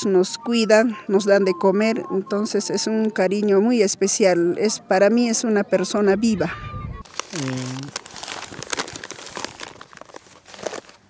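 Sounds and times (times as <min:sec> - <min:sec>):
paper bag crinkling: 0:07.0 - 0:11.0
short low vocal sound: 0:07.3 - 0:08.0.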